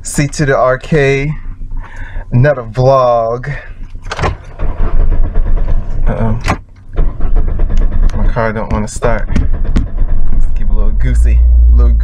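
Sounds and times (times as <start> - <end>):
starter cranking engine: 0.0 - 12.0.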